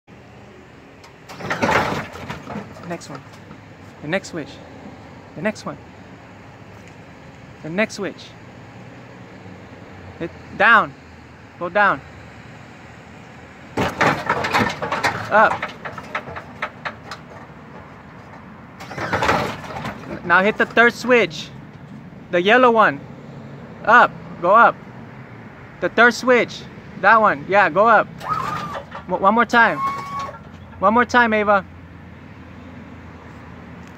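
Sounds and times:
hydraulic pump motor running: 0:13.8 - 0:21.0, 0:28.2 - 0:30.6.

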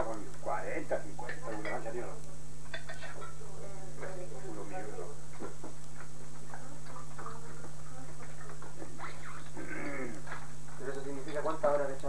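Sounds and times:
low electrical hum: 0:00.0 - 0:12.0
cutlery and tableware clinking: 0:02.7 - 0:03.4
voices: 0:06.5 - 0:12.0.

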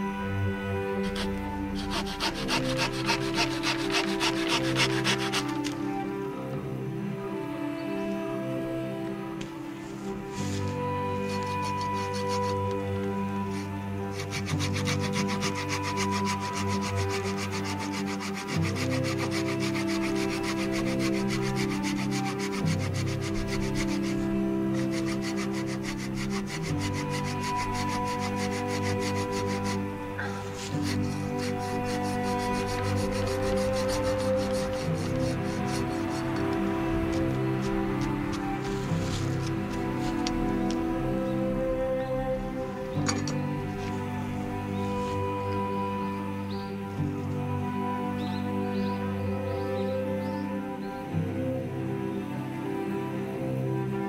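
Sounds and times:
background music: 0:00.0 - 0:54.0
hand saw cutting branch: 0:01.0 - 0:05.9, 0:10.4 - 0:40.8.

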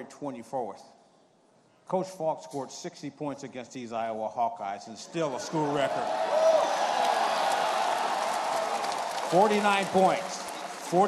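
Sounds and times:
crowd cheering and applauding: 0:05.4 - 0:11.0
single whoop: 0:06.1 - 0:09.1.

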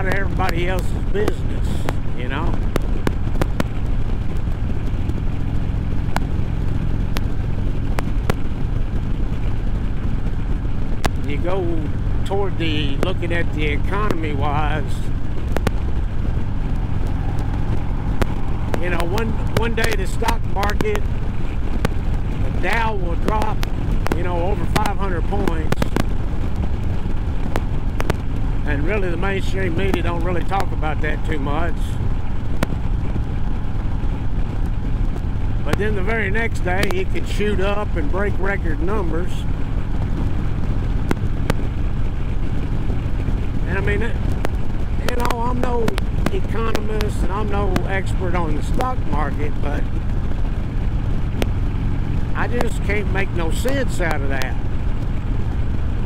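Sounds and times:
motorcycle engine cruising: 0:00.0 - 0:56.0
road and wind noise: 0:00.0 - 0:56.0
sharp clicks: 0:12.9 - 0:55.9.

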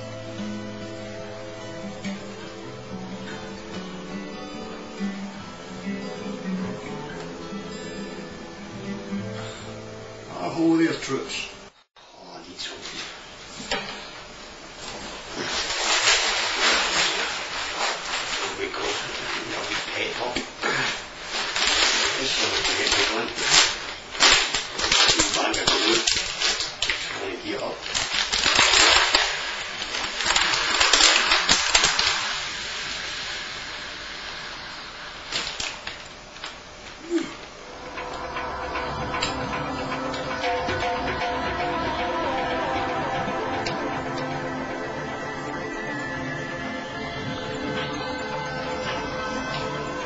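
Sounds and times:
plastic bag crinkling: 0:14.8 - 0:38.3.

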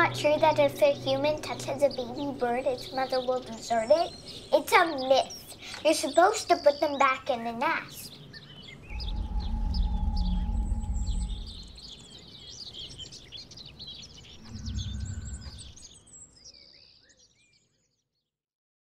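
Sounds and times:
songbirds chirping: 0:00.0 - 0:18.2
deep low rumble: 0:08.8 - 0:12.1, 0:14.4 - 0:15.8.

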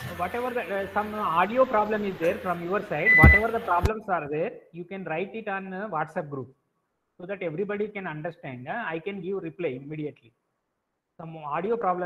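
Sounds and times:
man talking over online call: 0:00.0 - 0:06.6, 0:07.2 - 0:10.3, 0:11.2 - 0:12.0
short high beep: 0:03.1 - 0:03.5.

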